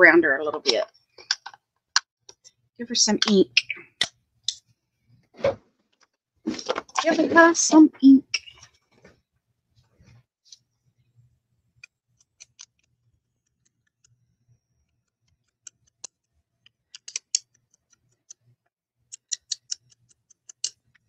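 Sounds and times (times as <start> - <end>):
small sharp clicks and taps: 14.8 - 18.5, 19.1 - 21.0.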